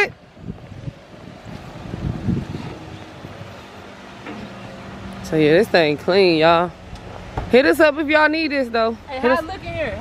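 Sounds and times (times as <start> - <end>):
wind on microphone: 0.0 - 5.1
car engine running slowly: 0.2 - 10.0.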